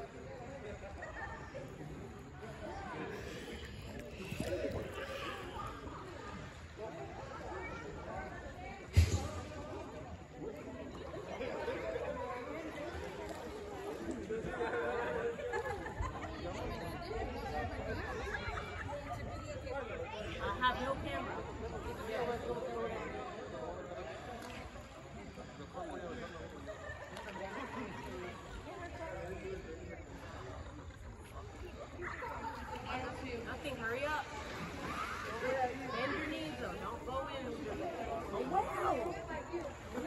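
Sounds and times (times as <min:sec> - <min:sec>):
distant voices chattering: 0:00.0 - 0:40.0
people talking and calling out: 0:00.0 - 0:40.0
low thump: 0:08.9 - 0:09.7.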